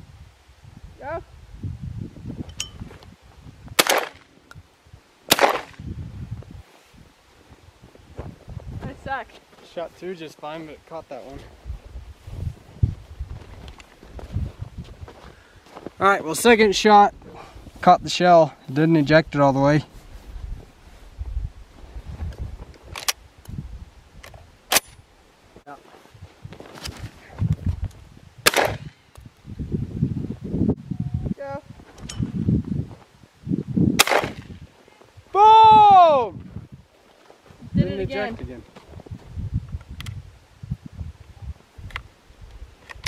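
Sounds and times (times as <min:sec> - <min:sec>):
shotgun shot with echo: 0:03.8 - 0:04.2, 0:05.3 - 0:05.8, 0:28.4 - 0:28.9, 0:34.0 - 0:34.6.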